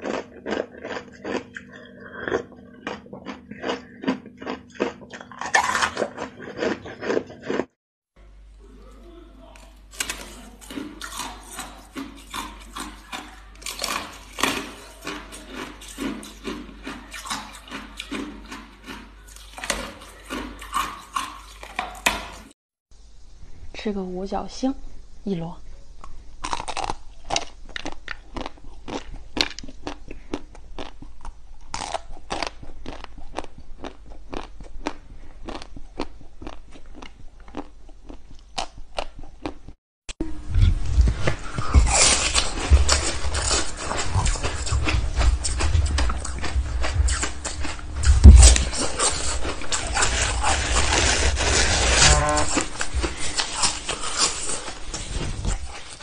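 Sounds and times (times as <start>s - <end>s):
teeth crunching ice: 0.0s - 7.8s, 9.6s - 22.5s, 26.4s - 39.8s, 40.7s - 56.0s.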